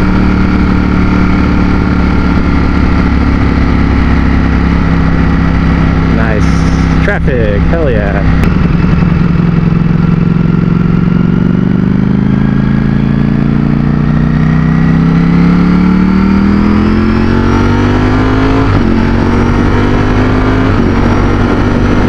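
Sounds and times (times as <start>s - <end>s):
motorcycle engine accelerating: 0.0s - 22.0s.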